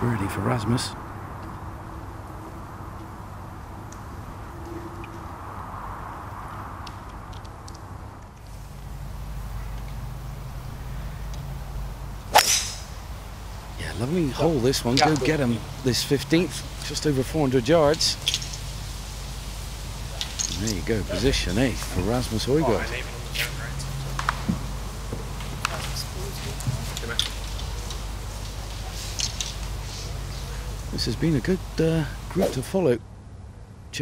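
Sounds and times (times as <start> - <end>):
low hum: 0.0 - 32.4
outdoor background hiss: 0.0 - 34.0
faint high ticks: 9.7 - 10.1, 11.2 - 11.5.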